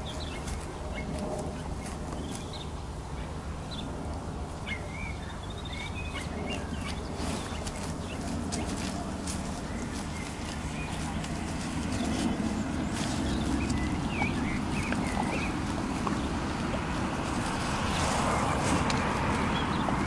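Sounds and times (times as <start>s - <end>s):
steady low rumble: 0.0s - 20.0s
blackbird singing: 4.6s - 20.0s.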